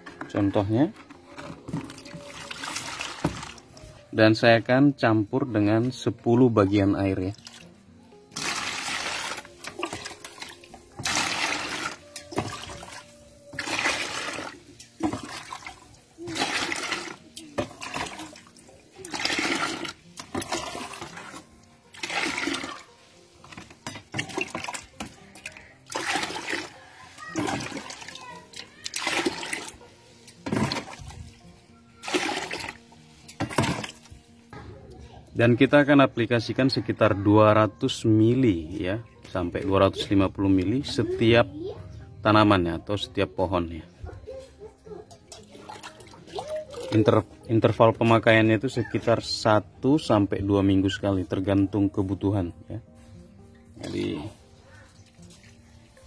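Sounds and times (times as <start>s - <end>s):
water pouring into a plastic bucket: 1.6s - 3.7s, 7.1s - 7.7s, 8.3s - 34.2s, 45.3s - 47.3s.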